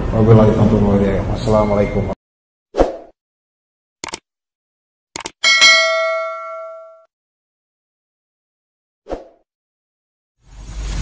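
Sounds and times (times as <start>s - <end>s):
quick clicks: 4.0s - 4.2s, 5.2s - 5.4s
notification bell ding: 5.4s - 7.1s.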